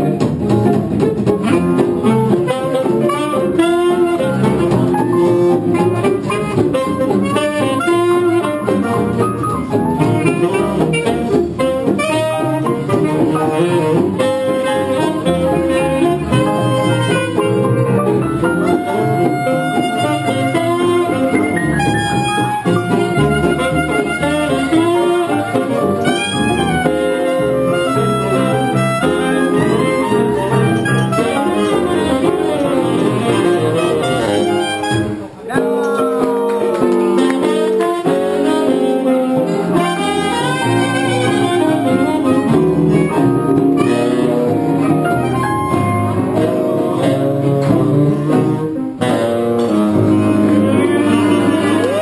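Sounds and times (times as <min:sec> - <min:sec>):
clarinet: 0:00.0 - 0:52.0
electric guitar: 0:00.0 - 0:52.0
plucked double bass: 0:00.0 - 0:52.0
saxophone: 0:00.0 - 0:52.0.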